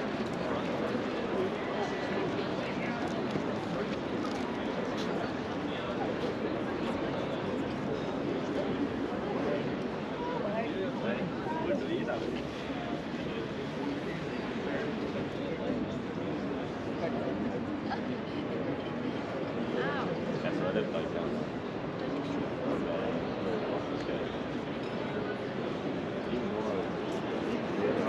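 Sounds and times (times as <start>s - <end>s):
crowd chatter: 0.0s - 28.0s.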